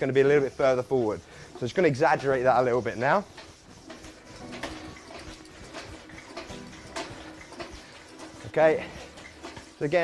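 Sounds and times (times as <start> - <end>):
ski simulator carriage swishing: 0.0 - 10.0.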